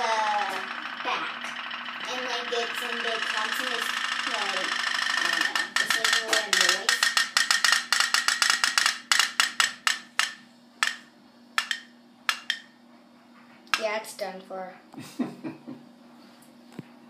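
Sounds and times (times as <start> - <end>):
toy boat boiler popping: 0.2 - 12.7.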